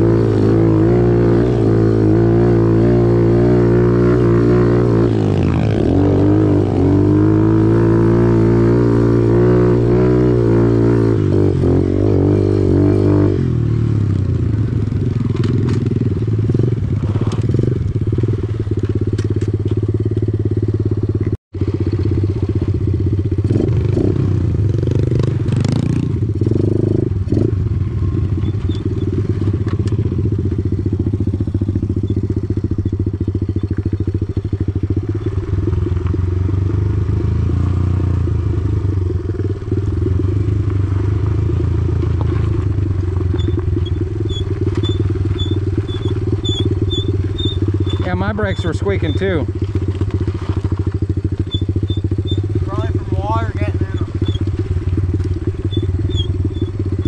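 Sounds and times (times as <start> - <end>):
motorbike engine running: 0.0 - 57.0
gravel clatter: 14.0 - 24.0, 25.1 - 57.0.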